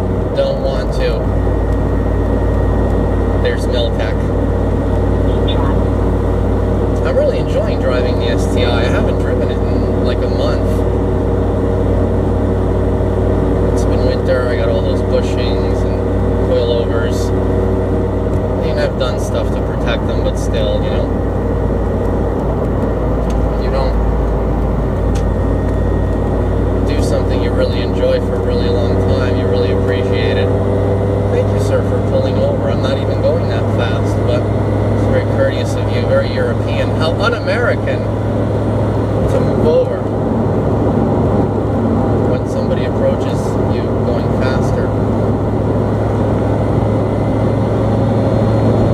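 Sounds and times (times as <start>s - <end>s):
car exhaust drone: 0.0s - 48.9s
road noise: 0.0s - 48.9s.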